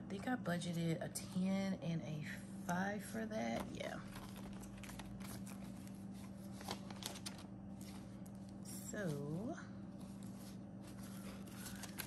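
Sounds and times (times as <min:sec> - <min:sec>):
banknotes rustling: 0:04.0 - 0:08.6, 0:10.0 - 0:12.0.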